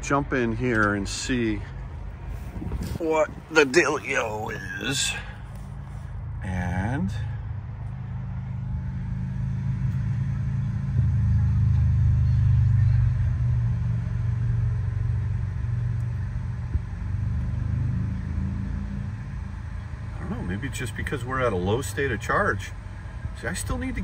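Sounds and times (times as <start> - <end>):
low mechanical rumble: 0.0 - 24.0.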